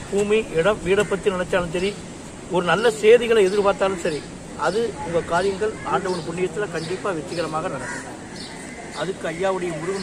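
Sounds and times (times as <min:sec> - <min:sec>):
man speaking: 0:00.0 - 0:08.0, 0:09.0 - 0:10.0.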